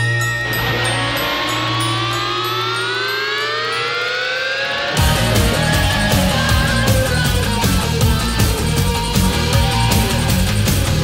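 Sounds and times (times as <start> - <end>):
rising siren-like tone: 0.0 - 8.0.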